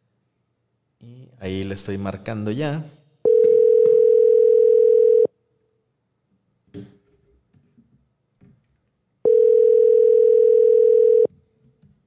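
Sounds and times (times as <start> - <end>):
telephone ringback tone: 3.3 - 5.3, 9.3 - 11.3.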